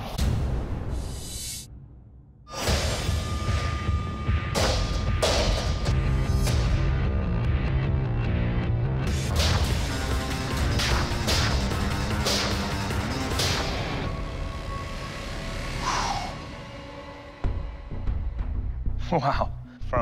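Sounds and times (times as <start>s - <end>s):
dramatic background music: 0.0s - 20.0s.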